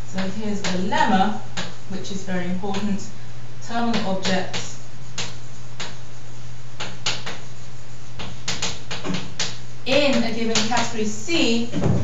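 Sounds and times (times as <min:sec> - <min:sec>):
steady low hum: 0:00.0 - 0:12.0
chalk tapping and scratching: 0:00.1 - 0:01.8, 0:03.7 - 0:12.0.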